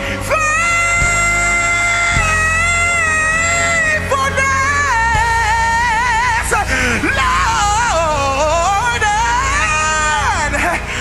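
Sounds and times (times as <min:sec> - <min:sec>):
gospel singer holding high note: 0:00.0 - 0:11.0
low sustained musical accompaniment: 0:00.0 - 0:11.0.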